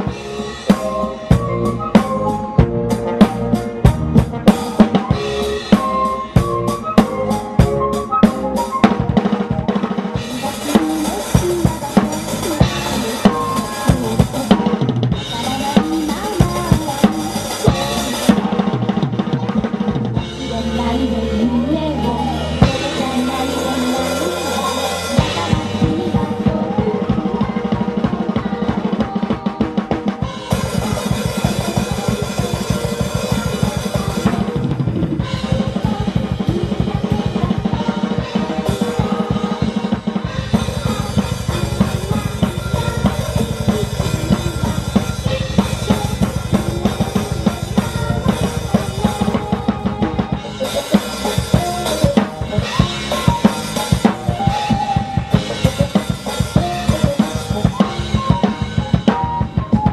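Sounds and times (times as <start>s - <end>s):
fast metal drumming: 0.0s - 21.1s, 22.1s - 59.9s
accompanying music: 0.0s - 59.9s.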